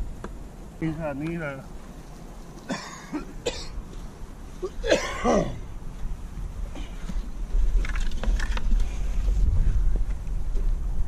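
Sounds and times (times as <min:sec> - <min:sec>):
wind buffeting microphone: 0:05.6 - 0:11.0.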